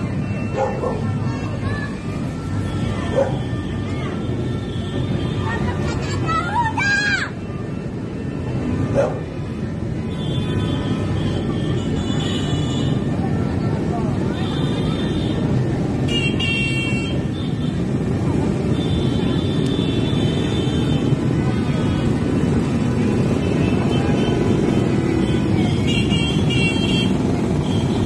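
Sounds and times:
crowd street noise: 0:00.0 - 0:28.0
motorcycles: 0:00.0 - 0:28.0.

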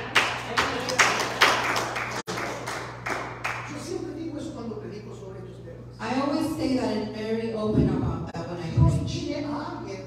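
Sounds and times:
claps in reverberant hall: 0:00.0 - 0:04.0.

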